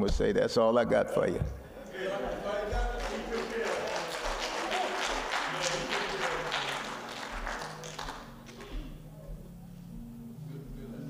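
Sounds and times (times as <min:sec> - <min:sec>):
congregation calling out: 0:00.9 - 0:09.1
congregation clapping: 0:02.1 - 0:09.0
low held keyboard notes: 0:08.2 - 0:11.0.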